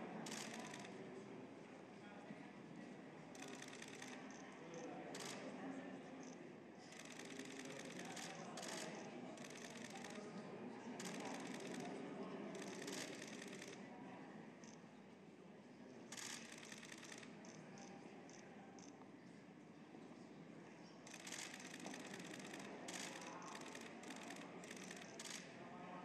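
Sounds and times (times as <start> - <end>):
murmur of voices: 0.0 - 26.0.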